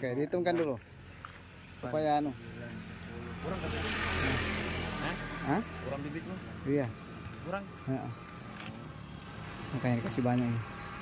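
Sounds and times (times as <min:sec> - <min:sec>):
vehicle passing with hiss: 0:01.5 - 0:11.0.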